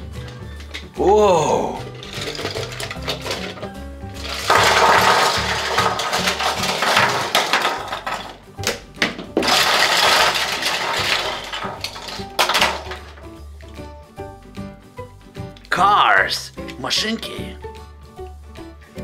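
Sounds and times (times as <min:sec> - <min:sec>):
background music: 0:00.0 - 0:19.0
toy cars clattering on wood: 0:01.8 - 0:13.4.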